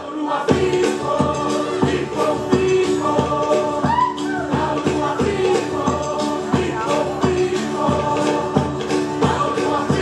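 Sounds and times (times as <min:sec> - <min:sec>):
strummed stringed instruments: 0:00.0 - 0:10.0
women's choir singing: 0:00.0 - 0:10.0.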